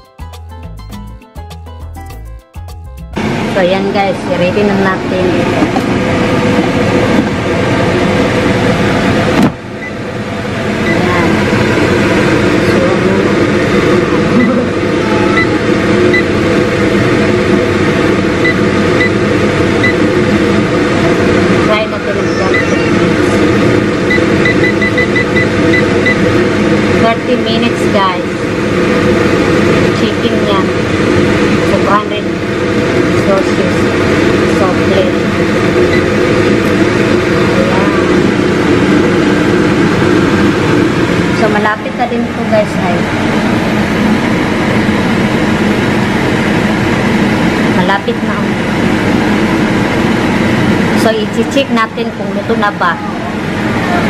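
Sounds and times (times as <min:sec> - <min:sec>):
air fryer fan hum: 0:00.0 - 0:54.0.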